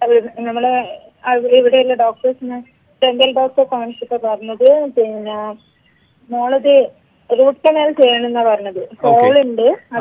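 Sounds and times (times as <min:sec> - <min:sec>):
person speaking over telephone: 0:06.4 - 0:10.0.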